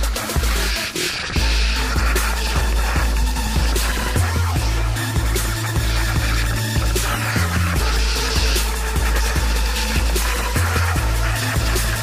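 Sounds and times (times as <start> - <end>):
trap music with heavy bass: 0.0 - 12.0.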